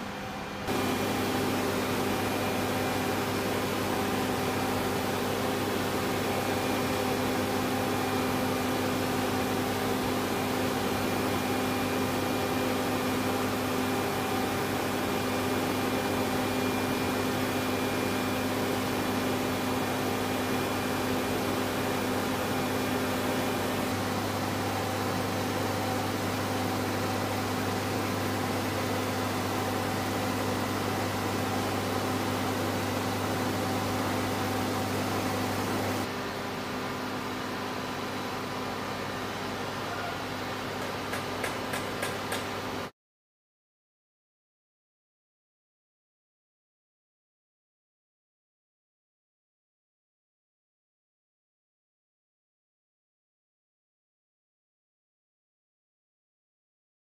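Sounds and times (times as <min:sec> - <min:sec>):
machinery humming: 0:00.0 - 0:28.4.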